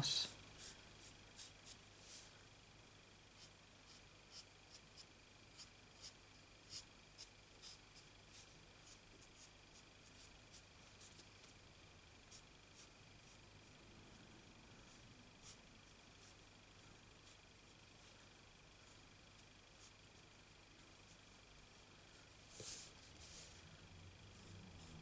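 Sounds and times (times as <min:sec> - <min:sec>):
marker scratching on cardstock: 0:03.4 - 0:08.1.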